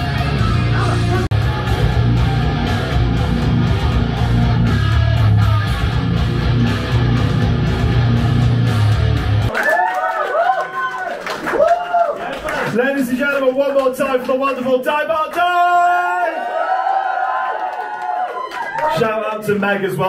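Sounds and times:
rock band playing live: 0:00.0 - 0:09.5.

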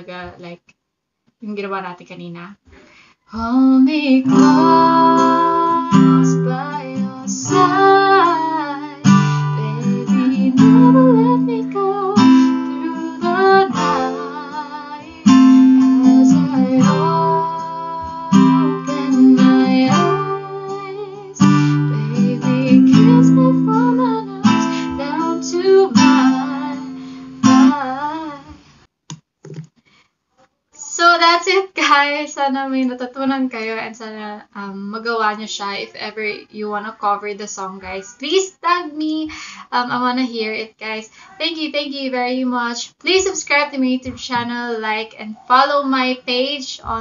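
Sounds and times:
woman singing: 0:03.3 - 0:28.6
acoustic guitar strumming: 0:04.2 - 0:28.2.

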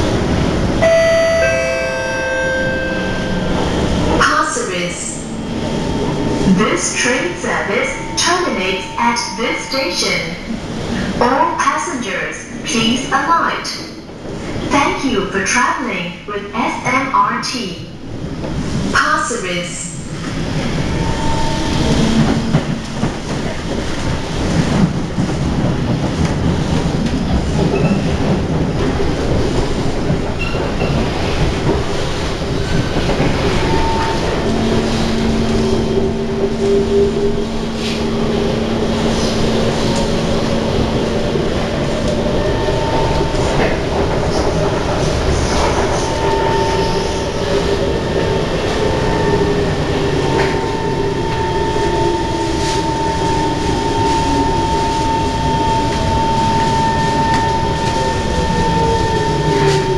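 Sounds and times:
train wheels rumbling on rail: 0:00.0 - 0:59.9
steady high tone: 0:00.8 - 0:10.6, 0:33.0 - 0:59.9.

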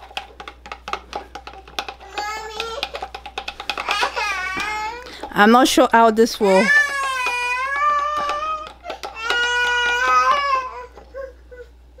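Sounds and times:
young child crying: 0:06.6 - 0:12.0.

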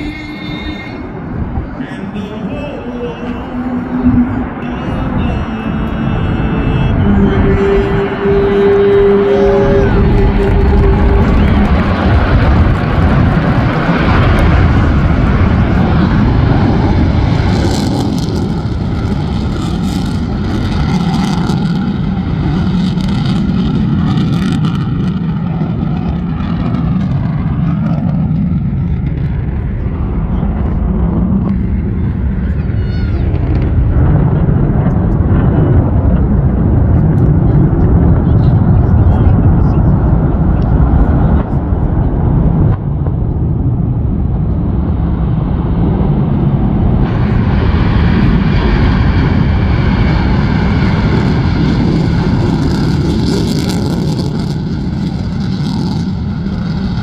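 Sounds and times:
jet engines rumbling: 0:00.0 - 0:57.0.

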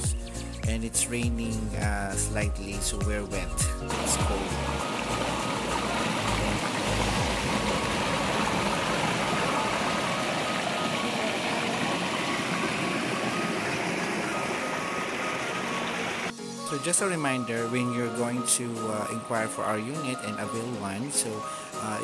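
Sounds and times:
stream water rushing over stones: 0:03.8 - 0:16.9.

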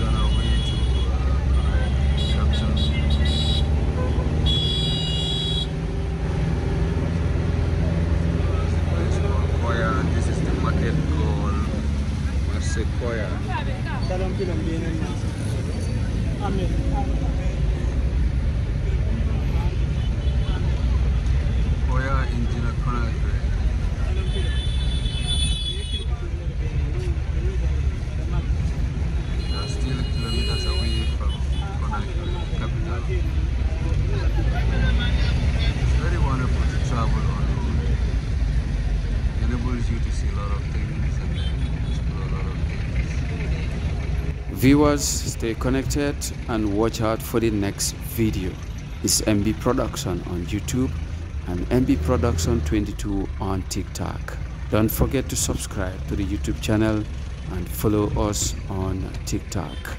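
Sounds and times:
vehicle engine rumble and road noise: 0:00.0 - 0:59.9.

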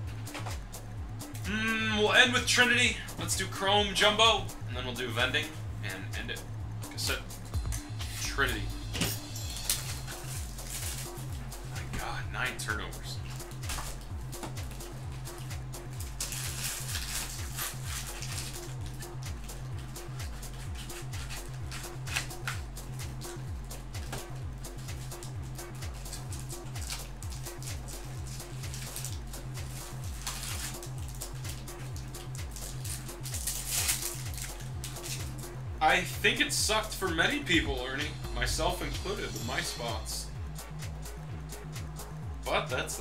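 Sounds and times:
music with pulsing low beat: 0:00.0 - 0:43.0
cardboard and wrappers rustling: 0:09.0 - 0:12.6, 0:13.2 - 0:22.6, 0:25.9 - 0:35.3.

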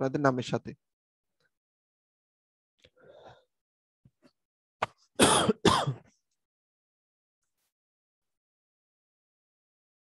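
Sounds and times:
person coughing: 0:04.8 - 0:06.1.

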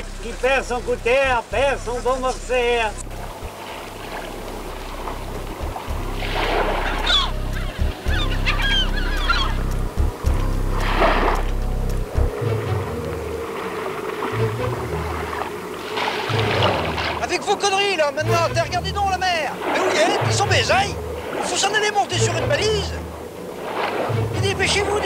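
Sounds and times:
low steady hum: 0:00.0 - 0:15.6
birds honking: 0:00.0 - 0:25.0.

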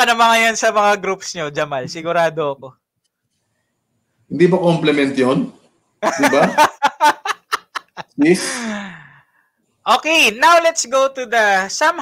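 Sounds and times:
speech: 0:04.3 - 0:05.6, 0:09.9 - 0:12.0
man laughing: 0:06.0 - 0:08.9
long breathy sigh: 0:08.4 - 0:09.4.

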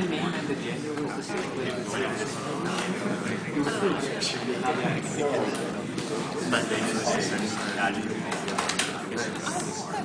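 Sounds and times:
murmur of overlapping voices: 0:00.0 - 0:10.0.

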